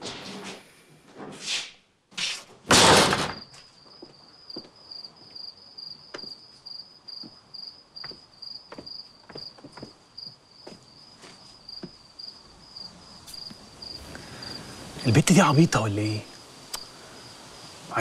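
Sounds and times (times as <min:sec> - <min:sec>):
door banging: 0:02.6 - 0:03.5
crickets chirping: 0:03.0 - 0:18.0
soft footsteps: 0:03.5 - 0:12.0, 0:13.2 - 0:14.1.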